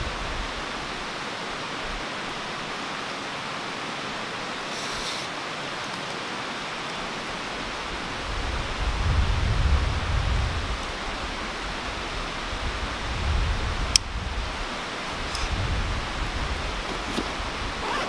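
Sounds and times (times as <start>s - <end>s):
mountain stream rushing: 0.0s - 18.0s.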